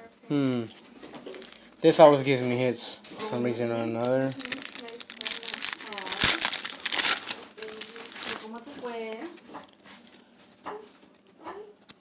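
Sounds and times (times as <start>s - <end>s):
person humming: 0.3s - 0.7s
cards rustling: 0.6s - 2.6s, 4.0s - 10.2s
packaging crinkling and tearing: 0.6s - 2.6s, 4.0s - 10.2s.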